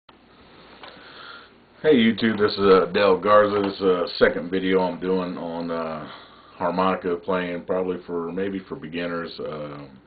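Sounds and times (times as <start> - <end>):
low room noise: 0.1 - 10.0
man breathing in close: 0.6 - 1.6.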